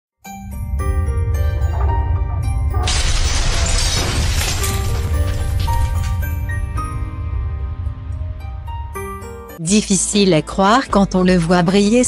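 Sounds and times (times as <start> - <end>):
glass shattering: 2.8 - 6.8.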